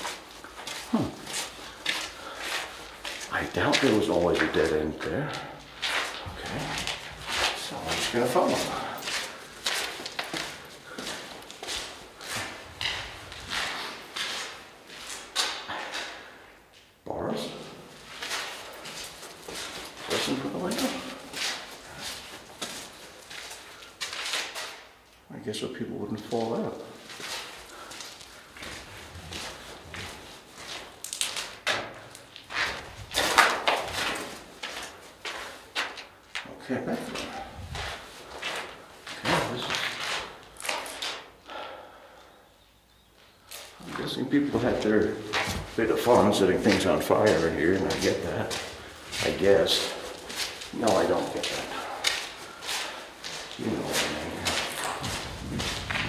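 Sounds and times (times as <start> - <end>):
footsteps on gritty concrete: 0.0 - 16.4, 17.5 - 25.0, 26.2 - 41.4, 43.4 - 56.0.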